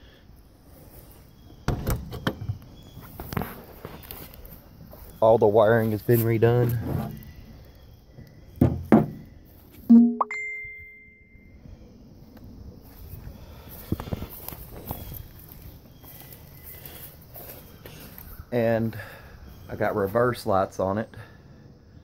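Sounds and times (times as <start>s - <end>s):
footsteps: 3.0s - 7.2s, 12.3s - 18.4s
loud bright ding: 9.9s - 11.4s.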